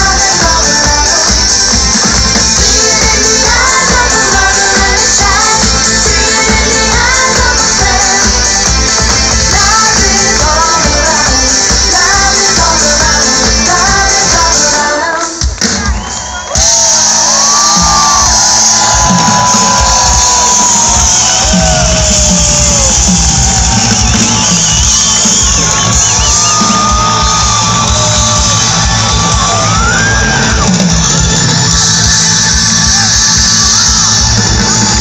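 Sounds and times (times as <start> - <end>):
crowd shouting and cheering: 0.0 - 35.0
live dance-pop music: 0.0 - 35.0.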